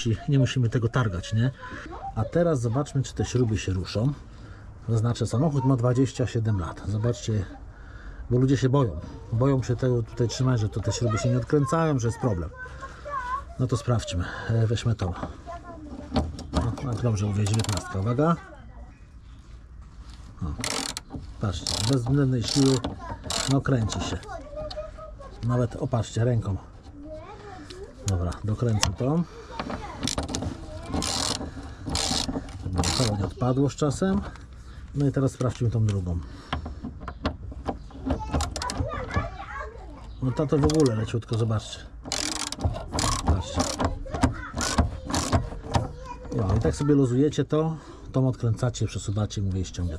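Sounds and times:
bolt scraping as it turns: 15.1 - 18.1, 20.5 - 26.2, 27.6 - 39.2, 40.0 - 46.8
socket wrench straining on bolt: 20.6 - 23.7, 29.6 - 33.3, 42.0 - 45.9.

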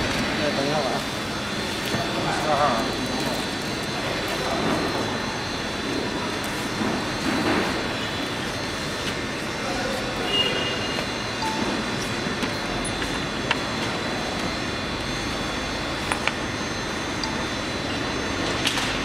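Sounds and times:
factory workshop din: 0.0 - 19.0.

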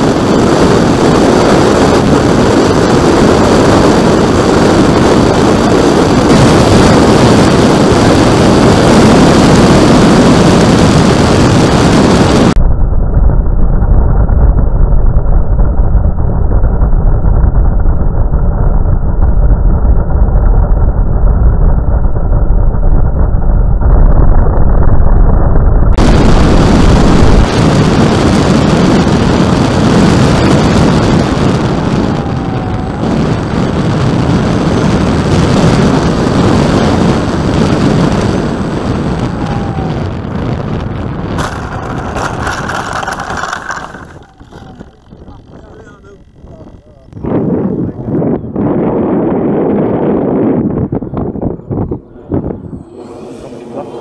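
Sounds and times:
propeller noise: 0.0 - 54.0
wind rush: 0.0 - 54.0.

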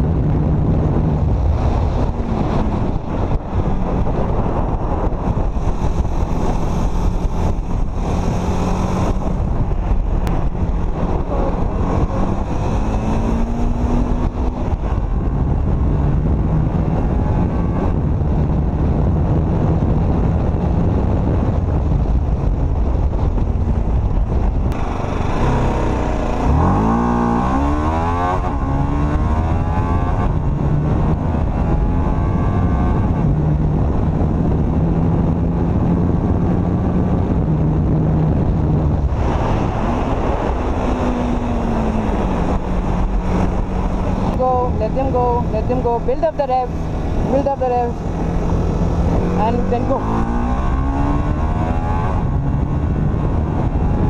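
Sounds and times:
motorcycle engine running hard: 0.0 - 54.0
wind rushing over microphone: 0.0 - 54.0.

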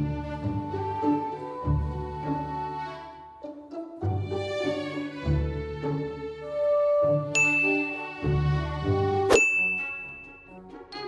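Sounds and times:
background music: 0.0 - 11.0
bright bell-like dings: 7.4 - 8.6, 9.3 - 11.0.

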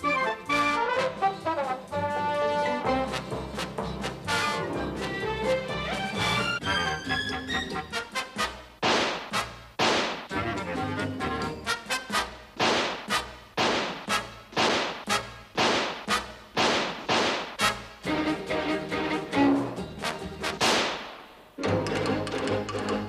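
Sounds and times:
orchestral music: 0.0 - 9.6, 10.3 - 16.5, 17.6 - 20.6, 21.6 - 23.0
brass phrase: 0.4 - 4.8.

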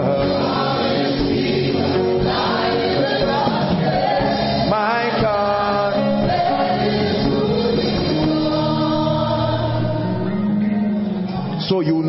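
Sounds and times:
choir singing slowly: 0.0 - 11.4
gospel music: 0.0 - 12.0.

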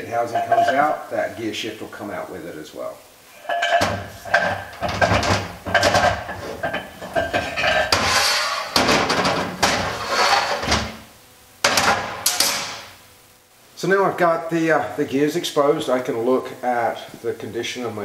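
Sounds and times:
metal clanking and scraping: 0.3 - 0.9, 3.3 - 11.0.

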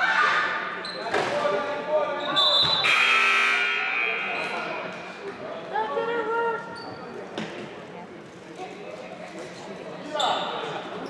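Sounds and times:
scoreboard horn buzzer: 2.8 - 4.3.

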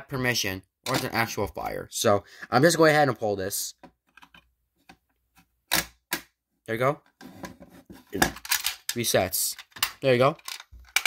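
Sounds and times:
loud plastic and metal snap: 5.7 - 6.3.

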